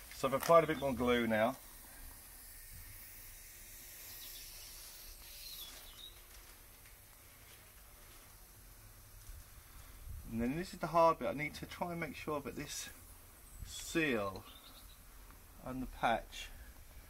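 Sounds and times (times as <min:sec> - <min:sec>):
faint high chirp: 0:05.4 - 0:06.3.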